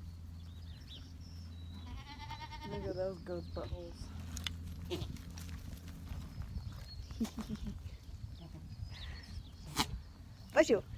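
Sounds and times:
goat kid bleating: 1.7 - 3.1, 4.8 - 5.2.

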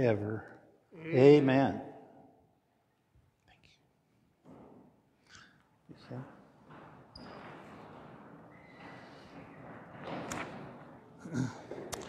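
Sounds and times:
person saying amen: 1.0 - 1.8.

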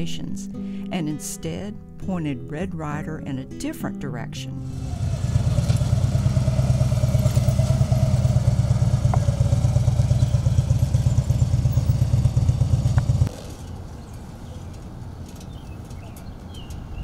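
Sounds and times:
motorcycle engine passing by: 4.6 - 14.7.

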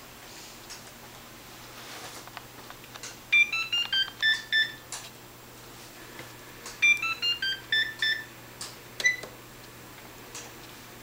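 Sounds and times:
electronic beeping tune: 3.4 - 4.8, 6.8 - 8.3.

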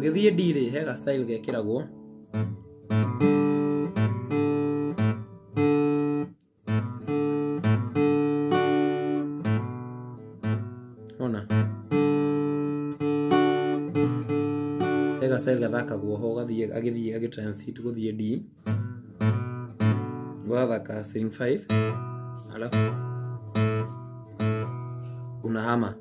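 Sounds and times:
acoustic guitar strumming: 0.0 - 16.8, 18.5 - 26.0.

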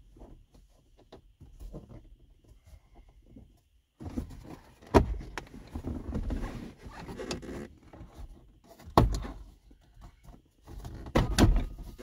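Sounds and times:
plastic rubbing and scraping: 4.0 - 9.4.

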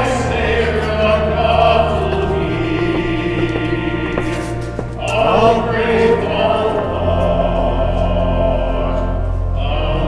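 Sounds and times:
choir holding long notes: 0.0 - 10.0.

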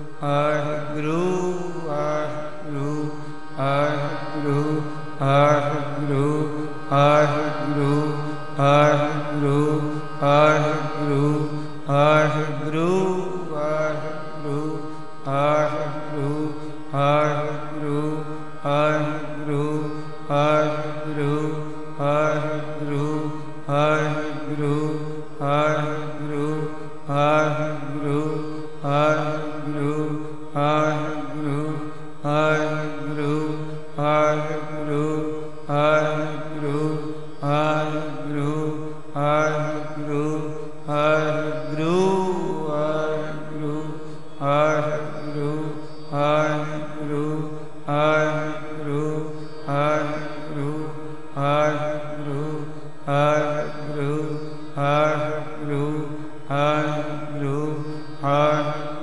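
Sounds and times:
devotional phrase chanted: 0.0 - 59.0
steady sustained drone: 0.0 - 59.0.

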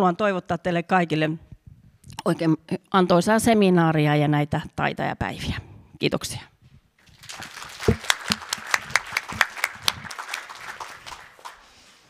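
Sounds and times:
audience applauding: 7.0 - 11.8.

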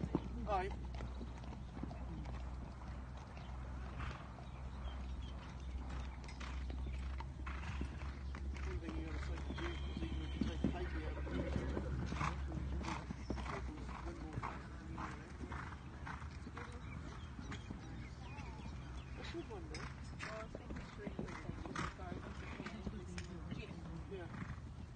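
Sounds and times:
horse hoofbeats on sand: 0.0 - 24.6.

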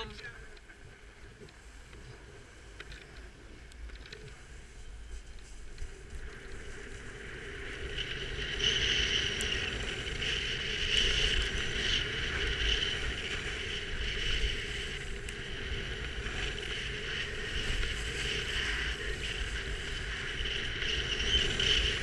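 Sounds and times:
skis scraping over snow: 0.0 - 22.0
wind on microphone: 0.0 - 22.0.

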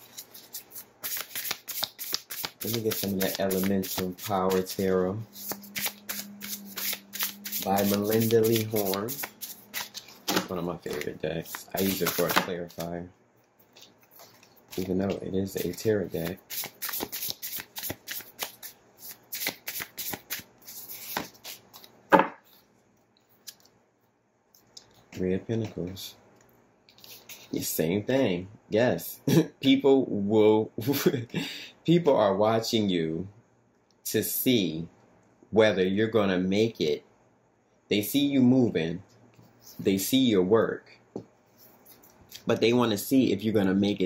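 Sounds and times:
cards being shuffled: 0.0 - 13.0, 13.6 - 22.6
faint steady hum: 0.0 - 44.0.

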